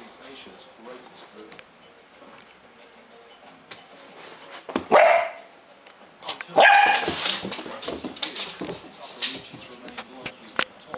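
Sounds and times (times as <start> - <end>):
dog barking: 4.9 - 5.5, 6.6 - 7.2.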